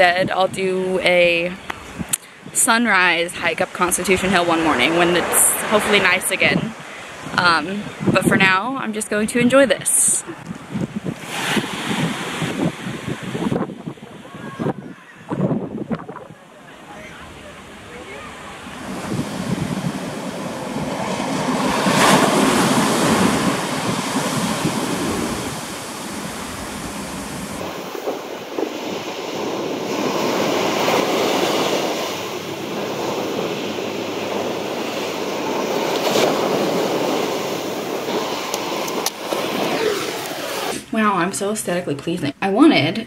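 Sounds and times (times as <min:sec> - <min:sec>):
waves breaking on pebble beach: 0:10.8 - 0:14.7, 0:16.1 - 0:40.9.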